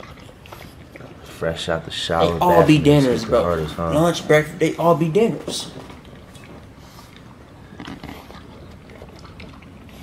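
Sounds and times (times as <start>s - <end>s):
dog chewing and licking: 0.0s - 10.0s.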